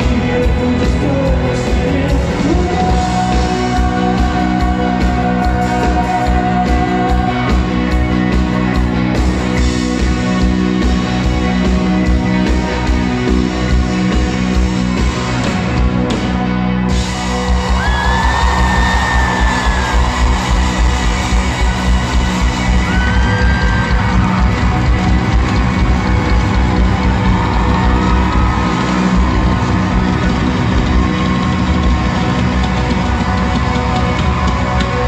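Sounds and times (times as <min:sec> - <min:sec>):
live rock band playing: 0:00.0 - 0:35.0
audience yelling and whooping: 0:16.5 - 0:35.0.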